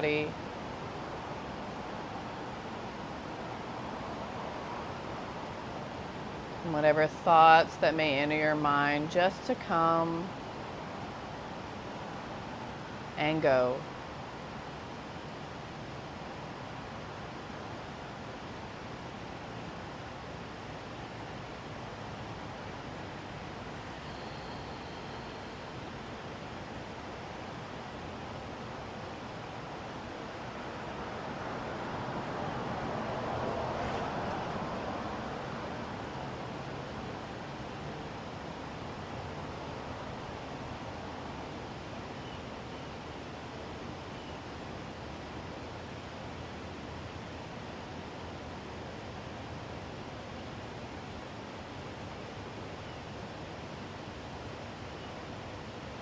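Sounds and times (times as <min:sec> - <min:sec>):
outdoor background noise: 0:00.0 - 0:56.0
car passing: 0:30.3 - 0:38.1.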